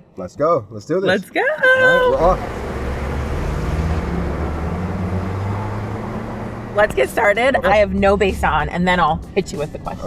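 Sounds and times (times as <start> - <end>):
road and traffic noise: 0.0 - 10.0
car engine hum: 1.1 - 10.0.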